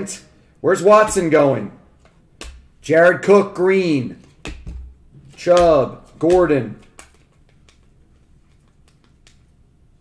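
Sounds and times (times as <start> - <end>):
cards rustling by hand: 5.1 - 9.8.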